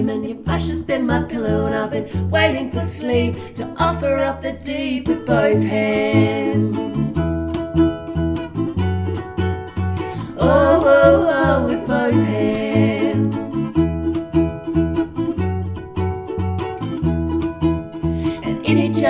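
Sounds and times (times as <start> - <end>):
acoustic guitar and ukulele picking: 0.0 - 19.0.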